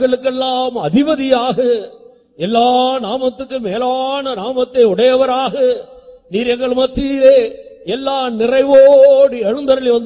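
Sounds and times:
man chanting a prayer: 0.0s - 10.0s.

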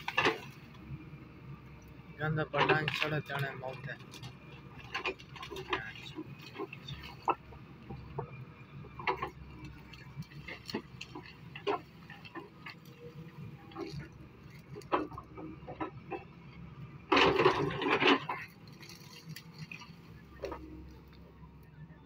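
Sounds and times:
diesel engine humming: 0.0s - 22.0s.

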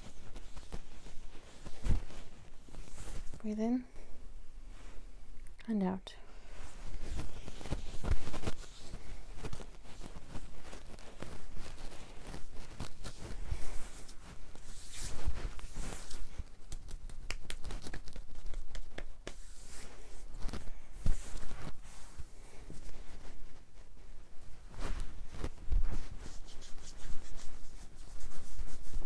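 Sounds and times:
fabric rustling and rubbing: 0.0s - 5.3s, 6.3s - 29.0s.

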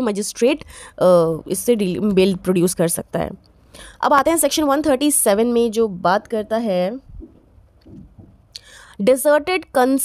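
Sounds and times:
woman speaking: 0.0s - 7.1s, 9.0s - 10.0s
faint low rumbles: 0.5s - 9.0s.

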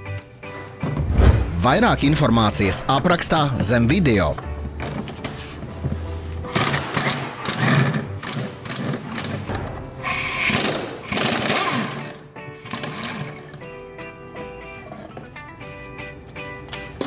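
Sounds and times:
background music: 0.0s - 17.0s
air impact wrench hammering: 10.0s - 13.3s.

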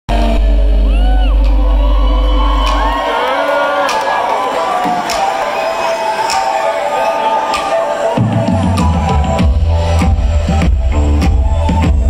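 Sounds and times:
audience whooping and cheering: 0.8s - 12.0s
live band music: 3.6s - 12.0s.

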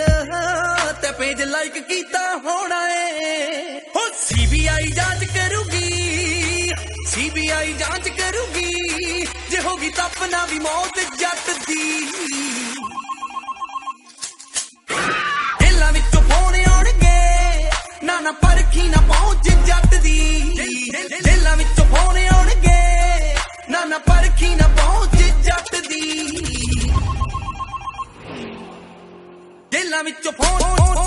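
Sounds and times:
song backing music: 0.0s - 2.6s, 4.0s - 12.7s, 15.6s - 27.2s, 29.6s - 31.0s
rapid electronic beeping trill: 4.9s - 14.1s, 24.1s - 28.2s
electronic ringtone trill: 12.1s - 14.2s, 25.2s - 28.2s
whoosh: 26.2s - 29.5s.

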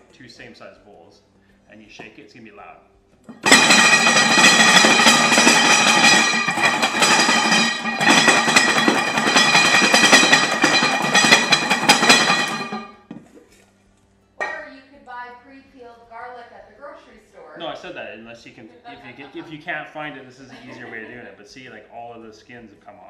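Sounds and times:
garlic rattling in metal bowls: 3.3s - 13.0s
metallic ringing of bowls: 3.3s - 13.1s.

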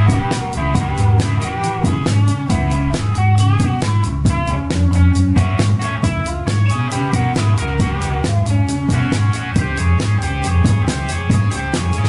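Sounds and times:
bass guitar: 0.0s - 12.0s
drum kit: 0.0s - 12.0s
electric guitar: 0.0s - 12.0s.

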